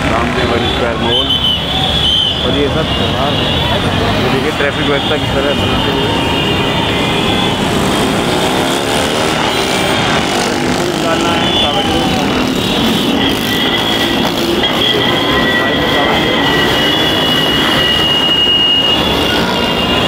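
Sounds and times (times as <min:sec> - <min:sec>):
motorcycle and car engines passing: 0:00.0 - 0:01.1, 0:03.1 - 0:20.0
crowd voices: 0:00.0 - 0:20.0.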